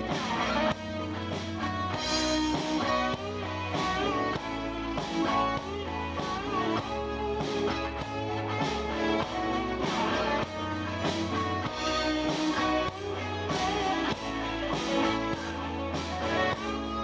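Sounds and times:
live rock band playing: 0.0s - 17.0s.

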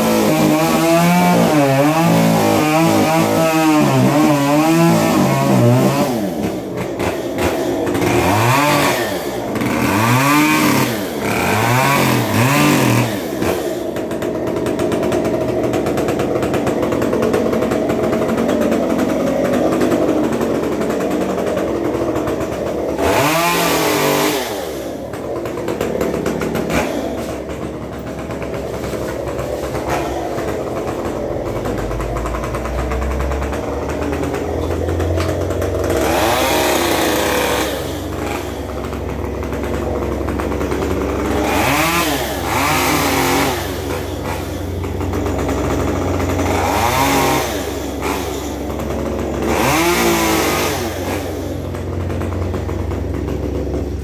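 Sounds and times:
small petrol engine revving: 0.0s - 54.0s.

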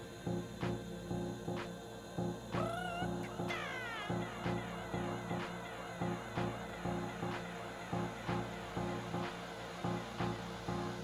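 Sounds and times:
house music with beat and bass: 0.0s - 11.0s
high wavering tone gliding upward: 2.2s - 11.0s.

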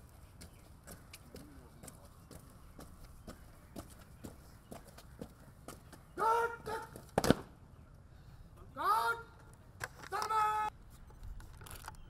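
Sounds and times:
boots marching on pavement: 0.0s - 7.4s.

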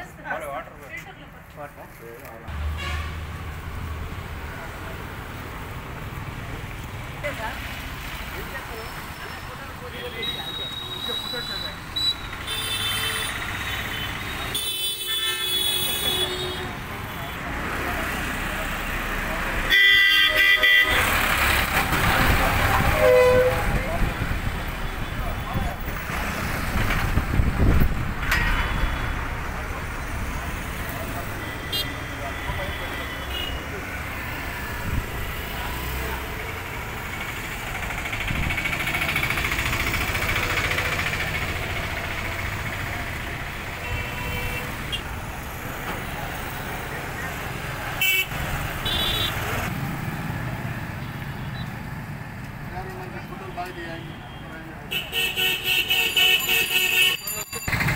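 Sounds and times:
road traffic passing: 0.0s - 57.9s
vehicle horn honking: 2.7s - 3.2s, 10.0s - 16.7s, 19.7s - 21.0s, 22.8s - 23.9s, 31.4s - 33.7s, 48.0s - 49.5s, 53.8s - 57.3s.

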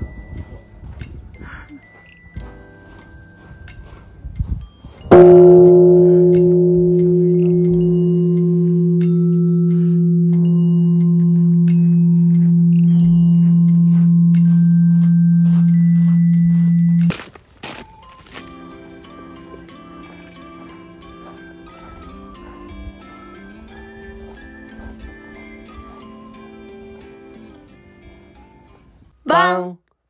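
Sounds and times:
large bell strike and hum: 5.1s - 17.1s.

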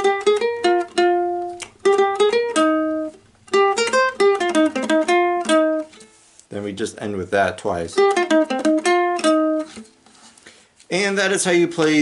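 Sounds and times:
ukulele plucked notes: 0.0s - 6.1s, 8.0s - 9.9s.

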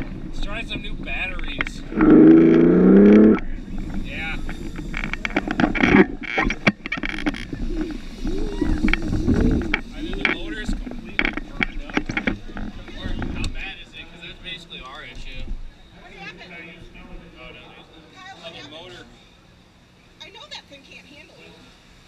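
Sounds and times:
indistinct voices: 0.0s - 18.1s
clattering knocks and rattles: 3.0s - 8.1s.

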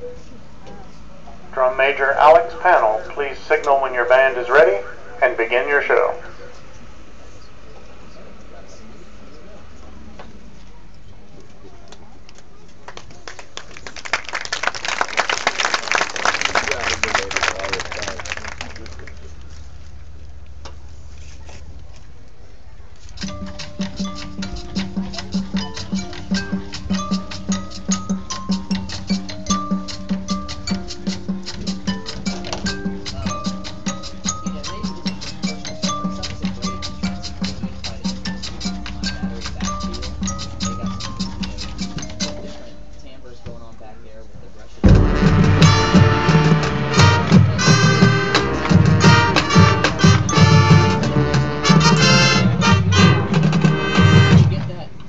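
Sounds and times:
marching band brass and drums: 1.5s - 6.5s, 44.8s - 55.0s
pitched percussion: 23.1s - 43.6s, 44.8s - 54.9s
rapid ticking pulse: 23.2s - 43.1s, 44.8s - 54.3s
sustained low note: 44.8s - 48.8s.

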